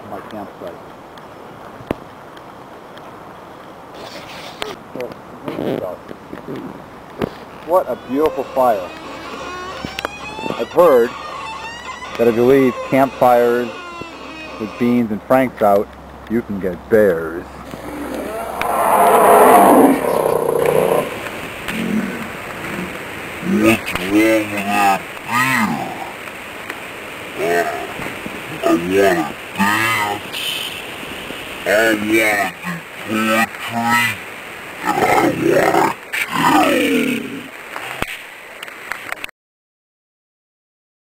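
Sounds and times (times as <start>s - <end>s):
rough creature roar: 17.7s - 22.9s, 34.8s - 37.5s.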